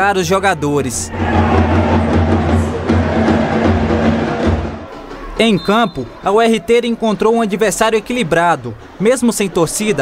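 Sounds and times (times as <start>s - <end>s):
dense crowd noise: 0.0s - 10.0s
bass drum beating: 1.1s - 4.9s.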